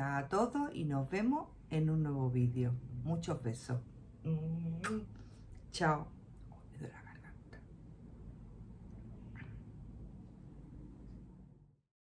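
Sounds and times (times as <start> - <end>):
woman whispering: 6.5 - 7.7.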